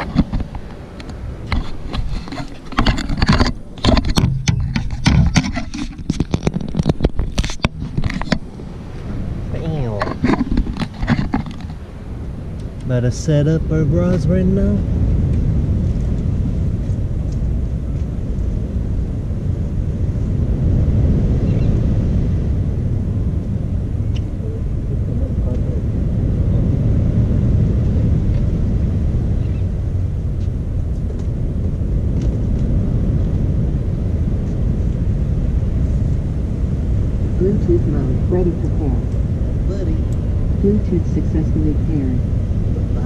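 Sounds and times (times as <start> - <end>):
wind buffeting microphone: 0.0 - 43.0
faint voices: 9.5 - 10.3, 24.3 - 26.8.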